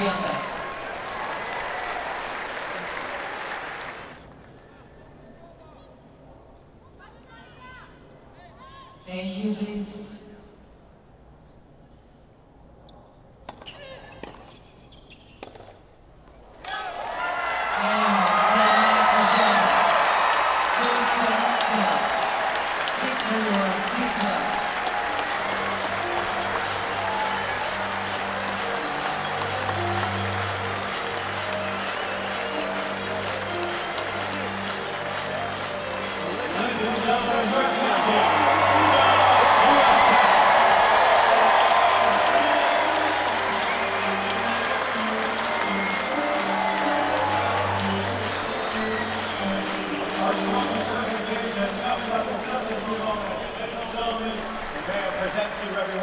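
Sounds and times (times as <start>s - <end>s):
crowd applauding and cheering: 0.0s - 4.4s, 16.7s - 56.0s.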